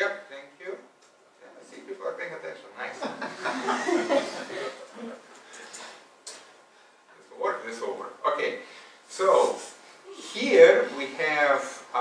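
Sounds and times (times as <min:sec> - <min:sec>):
audience laughing and talking: 0:03.0 - 0:05.2.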